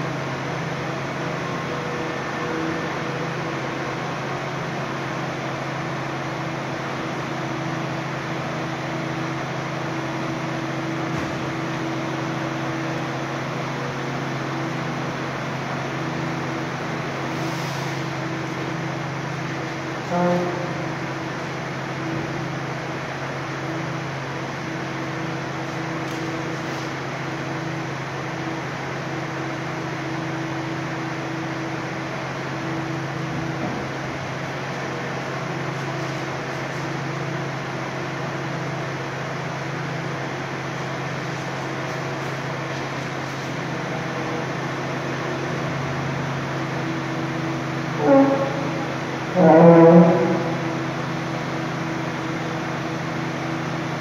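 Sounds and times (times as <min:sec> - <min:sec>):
engine and machinery droning: 0:00.0 - 0:54.0.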